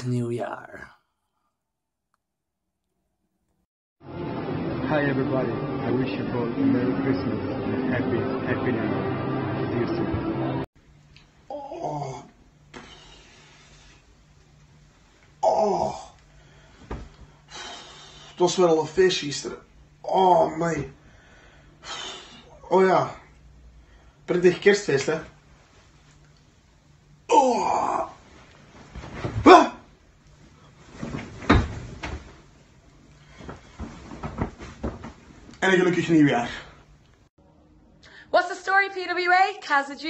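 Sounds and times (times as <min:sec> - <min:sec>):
low steady hum: 0:05.0 - 0:39.5.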